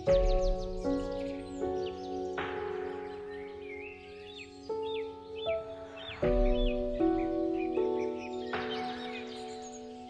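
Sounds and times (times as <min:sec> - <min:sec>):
gentle piano chords: 0:00.0 - 0:10.0.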